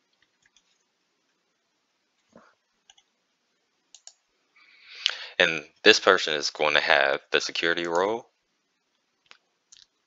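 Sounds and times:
keyboard keys typing: 0.1s - 0.9s, 2.2s - 3.1s, 3.9s - 4.2s.

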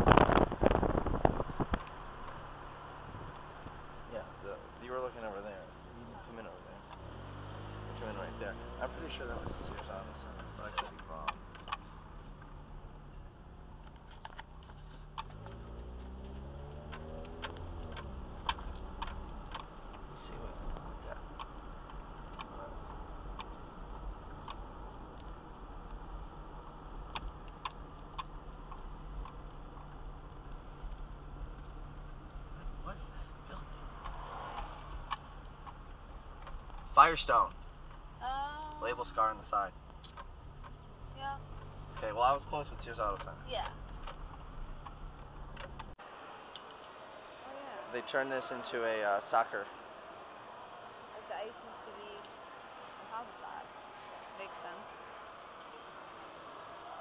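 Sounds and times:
car engine and tyres rumbling: 0.0s - 57.0s
faint irregular clicks: 0.1s - 2.5s, 3.3s - 47.0s.

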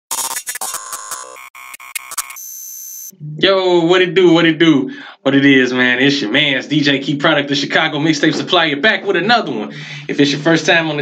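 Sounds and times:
glitchy electronic music: 0.1s - 3.1s.

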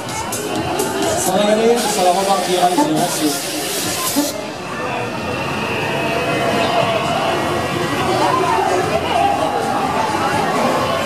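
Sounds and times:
crowd of voices: 0.0s - 11.0s
steady mechanical hum: 0.0s - 11.0s.

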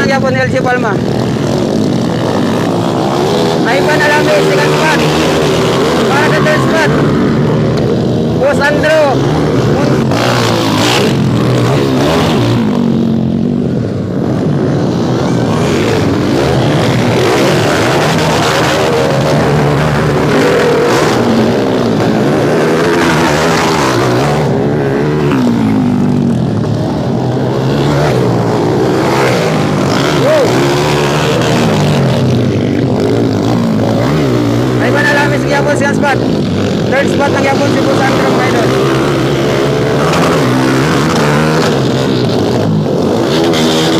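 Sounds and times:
dirt bike engines revving: 0.0s - 43.9s.

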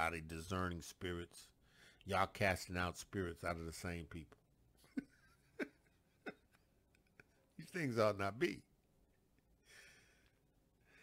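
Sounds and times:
faint breaths: 1.6s - 2.1s, 9.6s - 11.0s.

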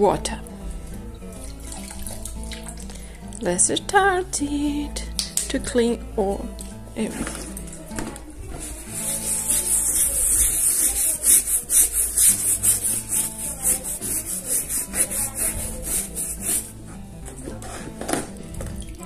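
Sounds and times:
background music: 0.0s - 19.0s
brush scrubbing wet leather: 8.6s - 17.0s.

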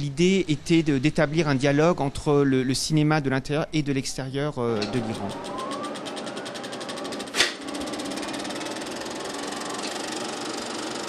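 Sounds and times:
film projector clattering: 4.7s - 11.0s.

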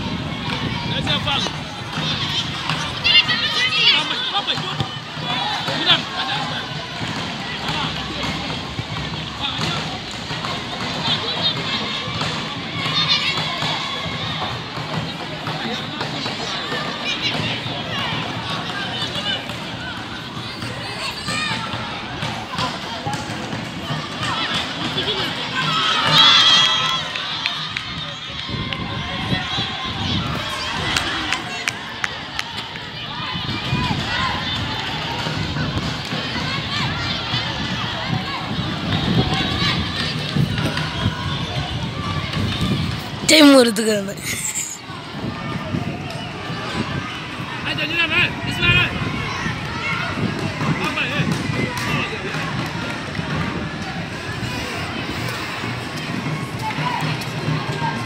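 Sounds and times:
people shouting on a football pitch: 0.0s - 58.0s.

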